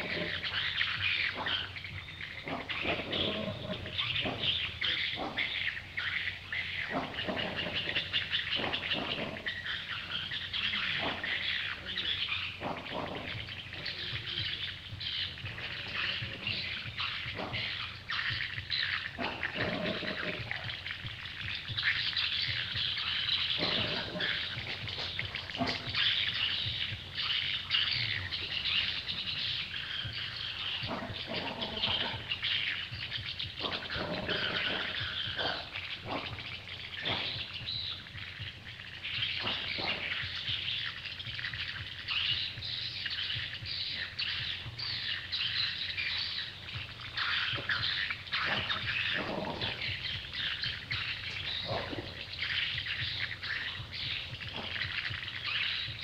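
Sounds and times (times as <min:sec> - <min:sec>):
birds chirping: 0:00.0 - 0:56.0.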